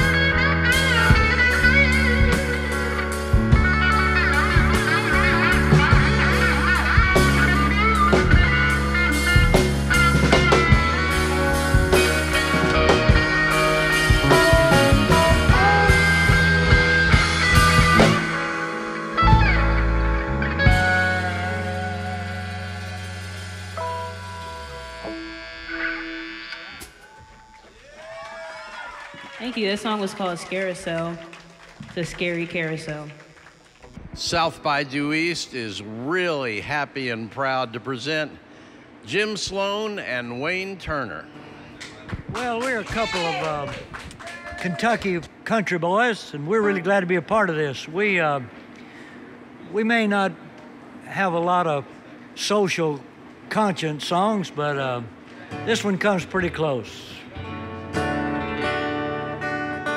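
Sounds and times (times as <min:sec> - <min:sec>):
electric guitar bent notes: 0:00.0 - 0:27.3
live rock band playing: 0:00.0 - 0:27.5, 0:41.3 - 0:45.2, 0:55.3 - 0:59.9.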